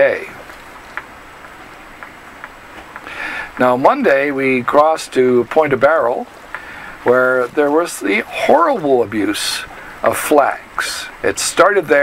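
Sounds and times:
small fans hissing: 0.0s - 12.0s
faint ticks: 0.5s - 3.7s, 6.4s - 6.9s.

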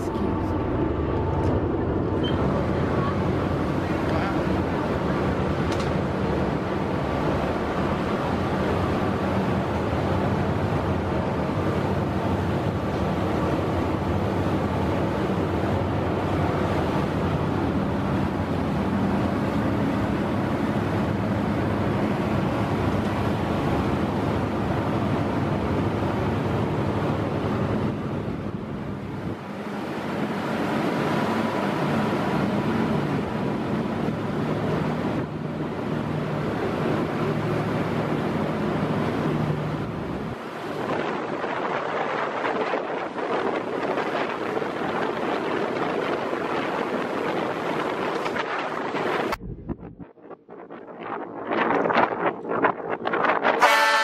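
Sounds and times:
churning wake rushing: 0.0s - 49.8s
boat engine hum: 0.0s - 50.1s
wind on microphone: 39.8s - 54.0s.

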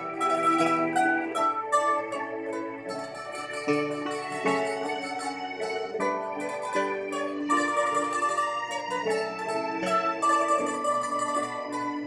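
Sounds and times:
backing track music: 0.0s - 12.0s
plucked string melody: 0.0s - 12.0s.

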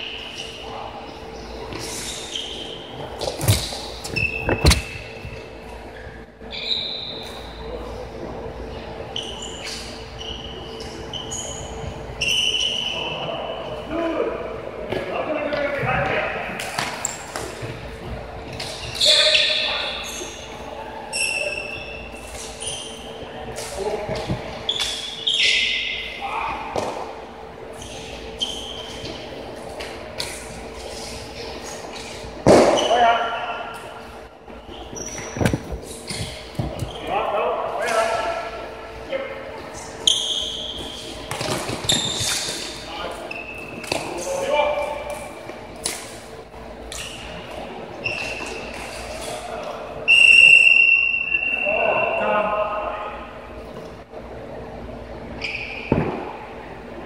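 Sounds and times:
shoes squeaking on wooden floor: 1.6s - 5.4s, 34.5s - 37.2s, 39.7s - 44.2s.

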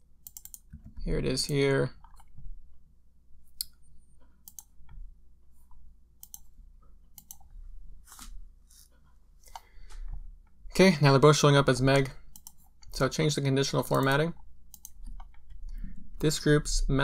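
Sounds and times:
computer mouse and keyboard clicks: 0.2s - 2.3s, 7.2s - 7.5s, 12.3s - 12.7s, 13.8s - 15.8s.

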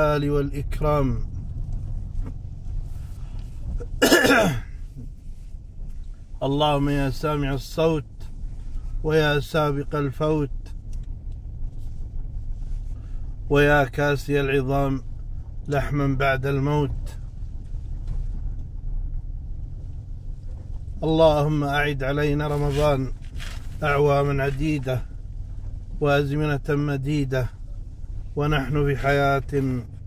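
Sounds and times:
car driving rumble inside cabin: 0.0s - 30.0s
man clearing throat: 3.9s - 4.7s.

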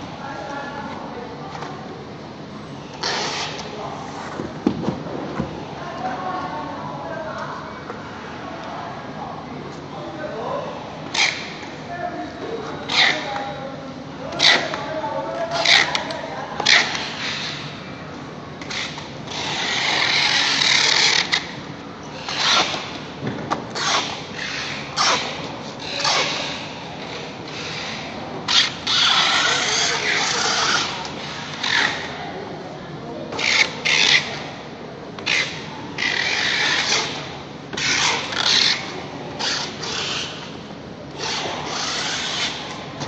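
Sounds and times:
packing tape rasping screech: 3.0s - 3.7s, 11.1s - 11.5s, 18.6s - 22.8s, 23.7s - 26.6s, 27.5s - 32.1s, 33.4s - 34.4s, 35.2s - 40.5s, 41.2s - 42.8s.

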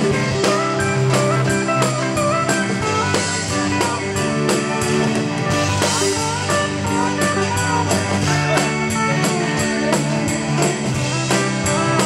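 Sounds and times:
bass guitar: 0.0s - 12.0s
steady drumbeat: 0.0s - 12.0s
steel guitar sliding notes: 0.0s - 12.0s.

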